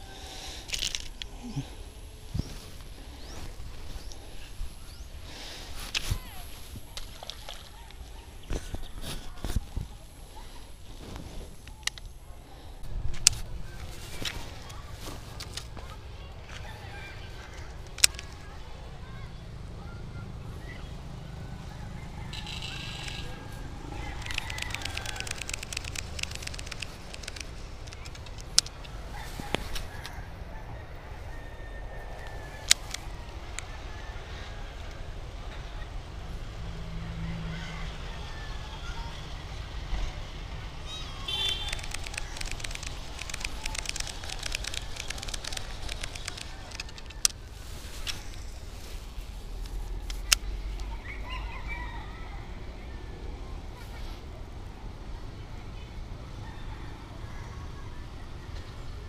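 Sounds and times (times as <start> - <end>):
bird calling faintly: 21.6 - 34.5, 40.8 - 52.1
fishing reel clicking: 22.3 - 23.4, 24.2 - 28.7, 41.4 - 47.4
fishing reel click: 22.4 - 23.4.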